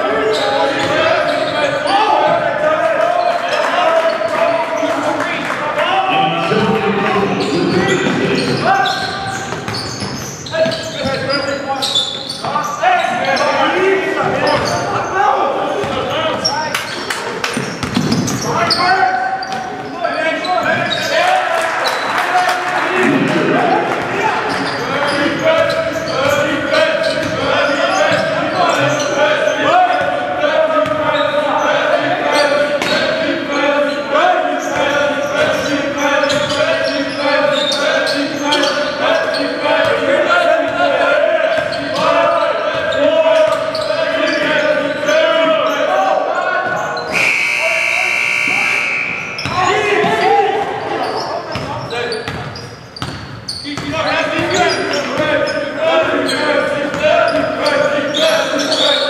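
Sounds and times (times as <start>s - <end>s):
voices and shouts: 0.0s - 52.2s, 53.6s - 59.0s
loud high-pitched signal: 47.1s - 49.4s.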